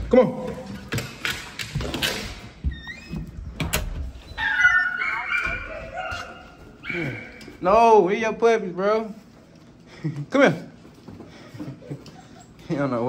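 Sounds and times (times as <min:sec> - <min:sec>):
puppies whining: 0:04.2 - 0:07.6.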